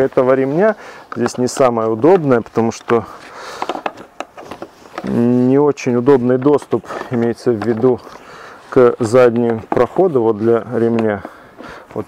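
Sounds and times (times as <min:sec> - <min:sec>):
soft rustling: 0:00.0 - 0:12.0.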